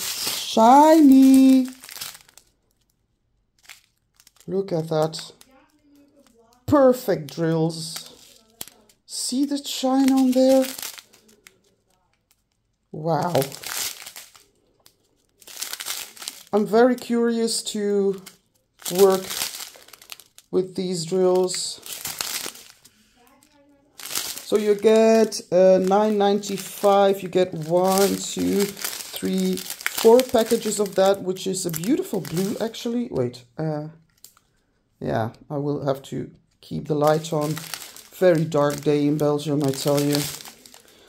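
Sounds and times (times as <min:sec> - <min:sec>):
plastic bag crinkling: 0:00.0 - 0:33.0, 0:36.7 - 0:41.0.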